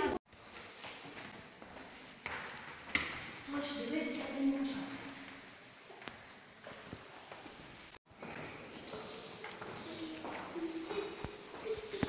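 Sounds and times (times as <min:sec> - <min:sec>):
footsteps on stone stairs: 0:00.0 - 0:03.5, 0:04.1 - 0:12.0.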